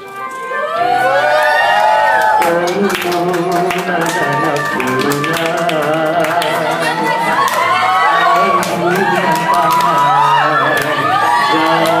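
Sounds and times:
dance music: 0.0 - 12.0.

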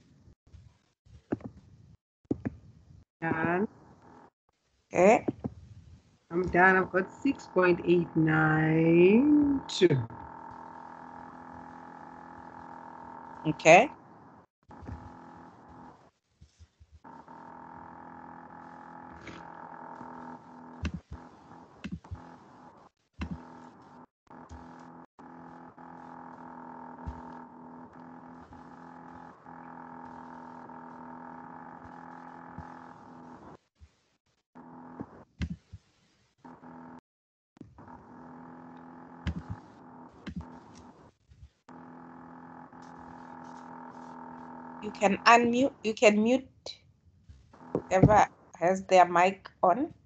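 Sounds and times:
steady hum with overtones: 6.3 - 16.1, 17.0 - 33.6, 37.7 - 46.4.

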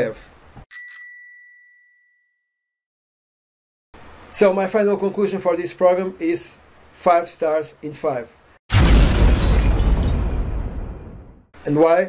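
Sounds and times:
bell-like ding: 0.7 - 2.8.

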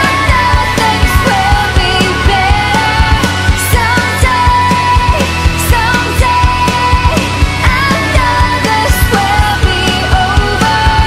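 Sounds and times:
drums steady beat: 0.0 - 11.0
hard rock band playing: 0.0 - 11.0.

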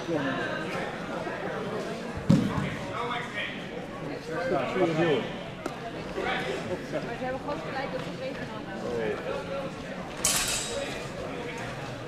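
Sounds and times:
murmur of voices in hall: 0.0 - 12.0.

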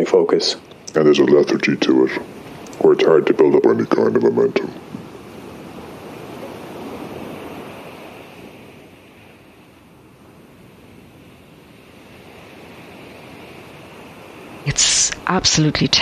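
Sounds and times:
ocean waves washing in: 0.0 - 16.0.

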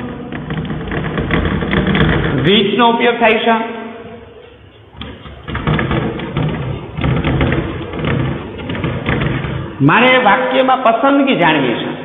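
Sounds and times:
steady low rumble: 4.0 - 10.6.

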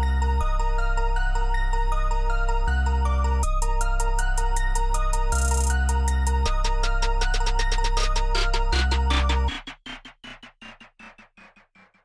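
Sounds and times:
electronic rap beat: 3.4 - 12.0.

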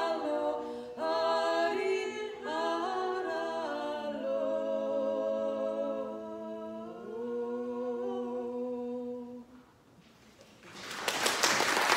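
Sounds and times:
unaccompanied voices singing chord: 0.0 - 9.6
audience applause: 10.6 - 11.9.

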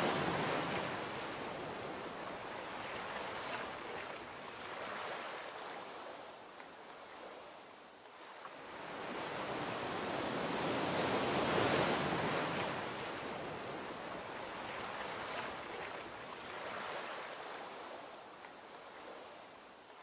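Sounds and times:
ocean waves breaking: 0.0 - 6.0, 8.2 - 18.2.

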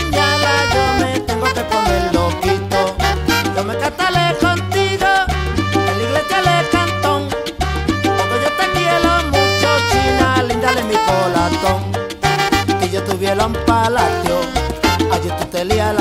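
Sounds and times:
salsa band playing: 0.0 - 16.0.

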